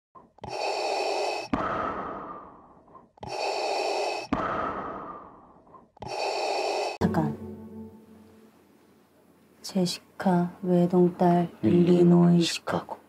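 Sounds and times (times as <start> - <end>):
mechanical respirator breathing: 0.3 - 7.0.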